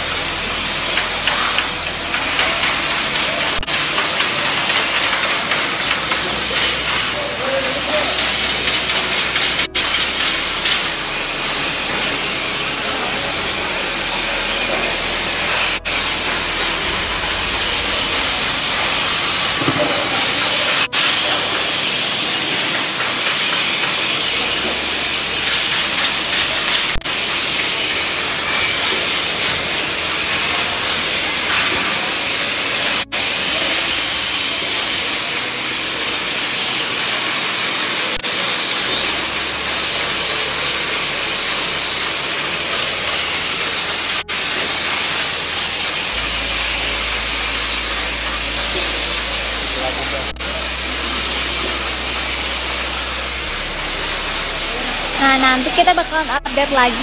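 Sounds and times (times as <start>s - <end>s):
arc welding hiss: 0.0s - 57.0s
grinding on steel: 0.0s - 57.0s.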